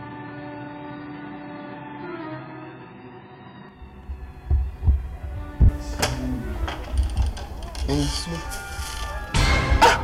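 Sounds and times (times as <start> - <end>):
deep low thumps: 3.8 - 6.0.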